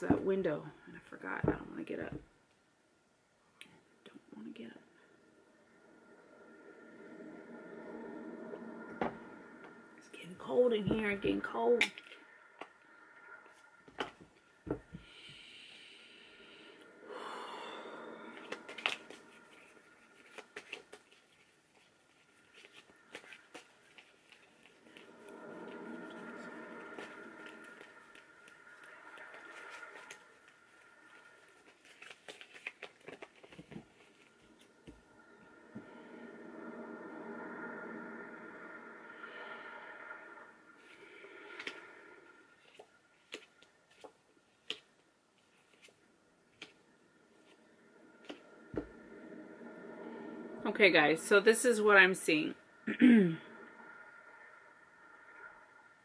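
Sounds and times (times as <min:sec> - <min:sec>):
cards being shuffled: 0:31.6 - 0:34.2.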